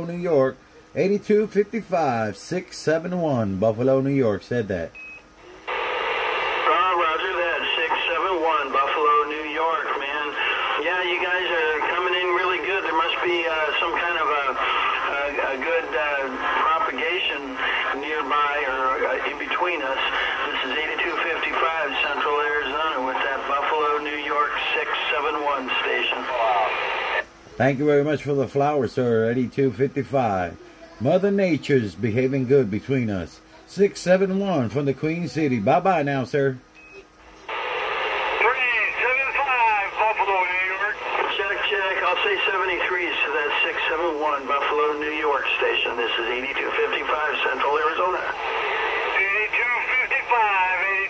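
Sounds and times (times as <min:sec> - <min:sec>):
man's voice over radio: 0:06.3 - 0:27.2, 0:37.9 - 0:51.0.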